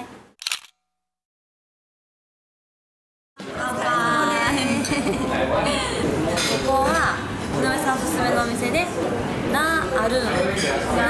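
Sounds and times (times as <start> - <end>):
camera shutter click: 0.4 - 0.8.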